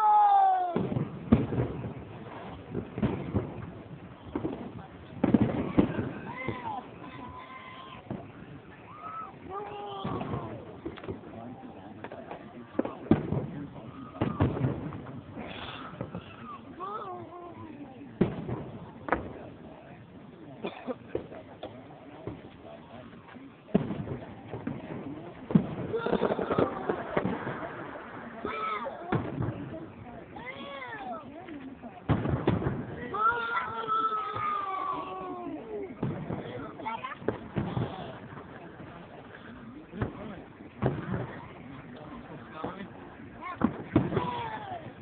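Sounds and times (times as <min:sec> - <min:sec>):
fireworks bursting: 0:00.0 - 0:45.0
people calling out: 0:05.7 - 0:10.7, 0:33.0 - 0:36.0
firework shells banging: 0:23.7 - 0:28.0.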